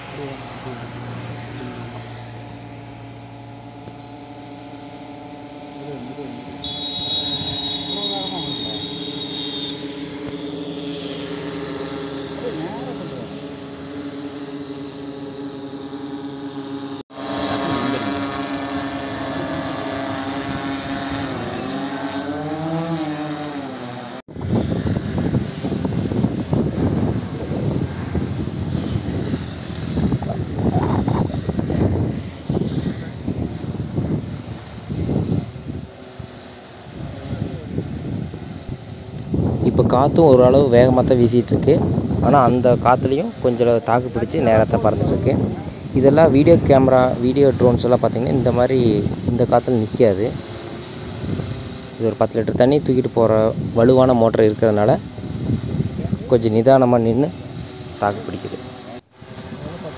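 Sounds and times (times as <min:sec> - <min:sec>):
drone rotors humming: 0:00.0 - 0:59.9
wind rushing on microphone: 0:24.3 - 0:59.9.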